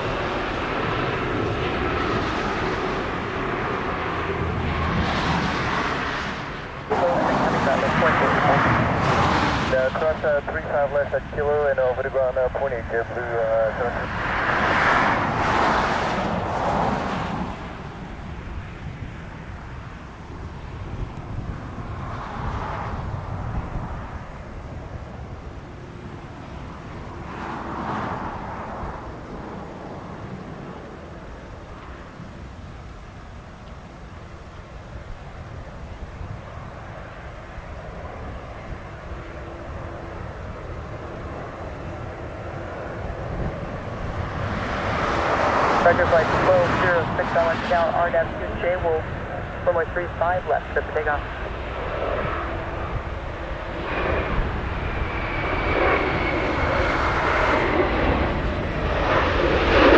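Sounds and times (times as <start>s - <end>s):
jet airliner engines rumbling: 0.0s - 59.9s
rush of noise: 0.0s - 59.9s.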